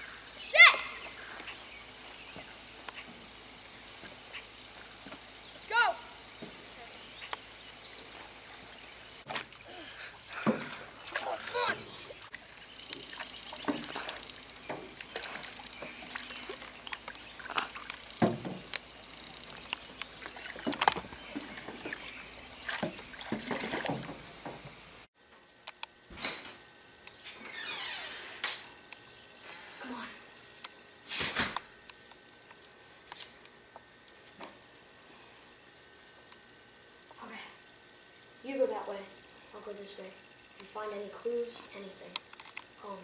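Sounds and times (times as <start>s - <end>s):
paddle sloshing water: 9.3s - 24.9s.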